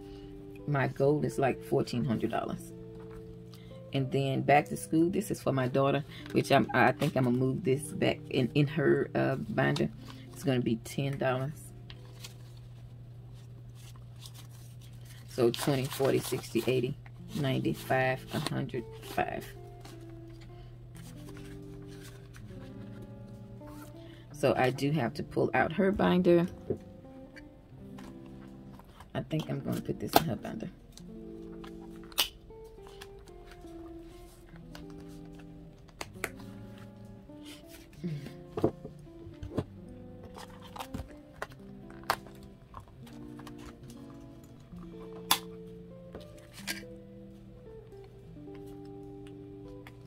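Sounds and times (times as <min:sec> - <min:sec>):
soft music of slow chords: 0:00.0 - 0:50.0
paper money rustling: 0:12.0 - 0:20.0, 0:21.0 - 0:24.0
plastic binder pocket clicks: 0:45.1 - 0:45.5.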